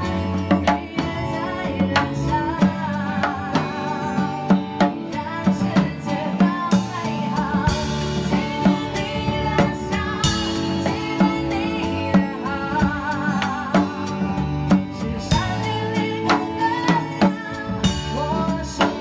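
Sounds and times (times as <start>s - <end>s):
bass guitar: 0.0s - 19.0s
drum kit beat: 0.0s - 19.0s
person singing: 0.0s - 19.0s.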